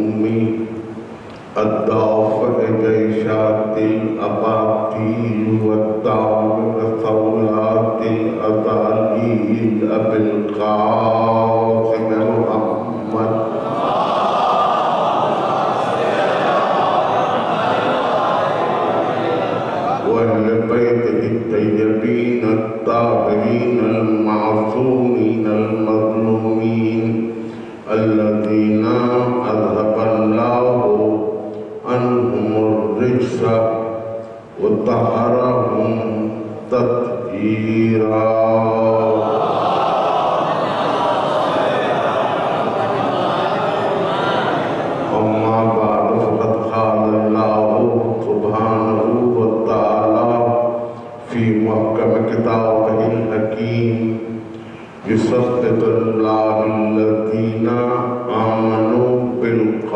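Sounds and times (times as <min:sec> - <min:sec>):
man chanting into a microphone: 0:00.0 - 0:14.9, 0:19.9 - 0:39.7, 0:45.1 - 0:59.9.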